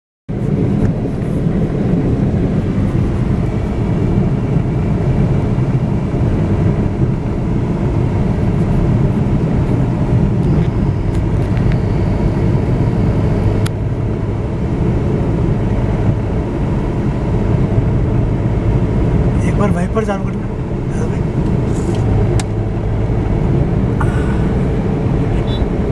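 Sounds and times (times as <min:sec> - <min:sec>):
car engine rumble: 0:00.3 - 0:25.9
tyres on the road: 0:00.3 - 0:25.9.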